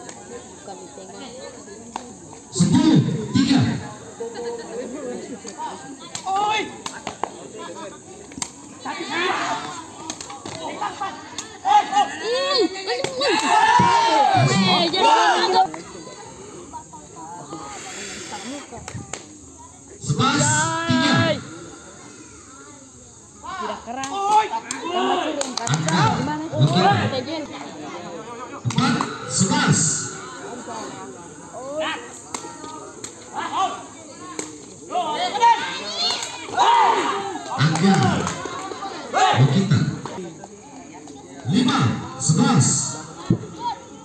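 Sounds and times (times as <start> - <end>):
spectators shouting: 8.8 - 16.0, 20.1 - 22.6, 28.6 - 34.0, 34.9 - 40.1.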